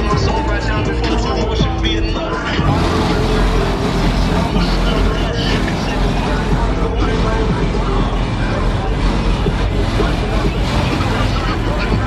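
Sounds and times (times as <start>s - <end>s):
crowd voices: 0.0s - 12.0s
car engine rumbling: 0.1s - 12.0s.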